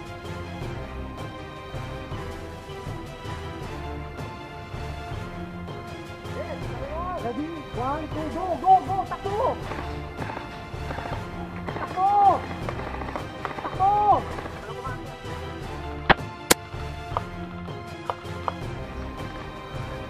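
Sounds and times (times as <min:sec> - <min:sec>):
background music: 0:00.0 - 0:20.0
people shouting calls: 0:06.4 - 0:15.0
airsoft rifle cracks: 0:09.6 - 0:14.6, 0:16.1 - 0:17.3
light clicks: 0:18.0 - 0:18.7.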